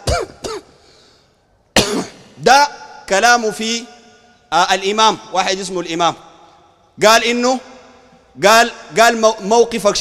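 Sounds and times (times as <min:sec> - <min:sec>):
man clearing throat: 0:00.0 - 0:00.8, 0:01.7 - 0:02.4.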